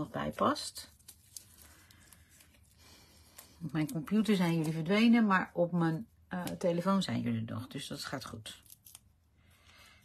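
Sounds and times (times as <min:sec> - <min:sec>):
paper rustling: 0:00.2 - 0:05.1.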